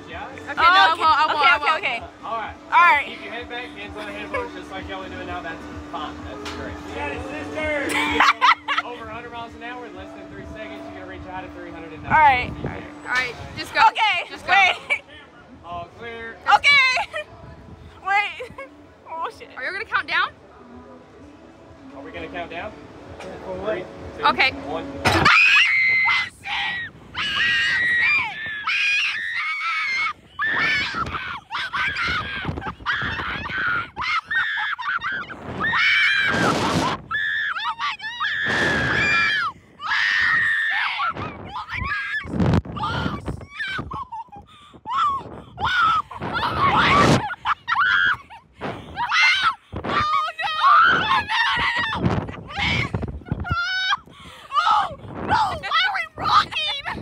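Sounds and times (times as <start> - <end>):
women screaming: 25.1 - 48.4, 49.0 - 57.0
women laughing and gasping: 43.8 - 49.9.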